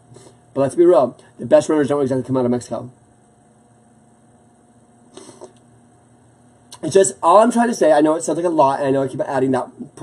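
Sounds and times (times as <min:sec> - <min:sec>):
faint high whine: 0:00.0 - 0:10.0
low electrical hum: 0:00.0 - 0:10.0.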